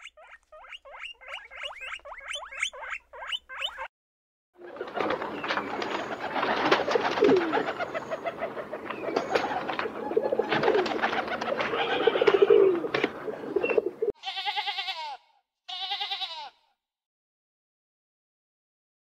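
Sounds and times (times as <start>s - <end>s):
pigeons cooing: 4.6s - 14.2s
sheep bleating: 11.8s - 12.4s, 14.2s - 16.7s.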